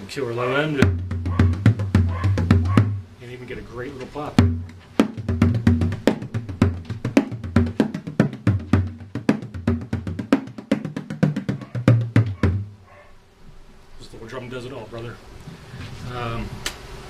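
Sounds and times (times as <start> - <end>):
frame drum played with tipper: 0.8 - 3.2, 3.9 - 12.8.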